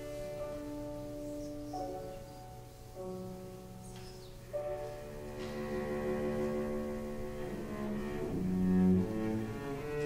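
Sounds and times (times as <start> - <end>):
cello bowed notes: 0.0 - 10.0
piano accompaniment: 0.0 - 10.0.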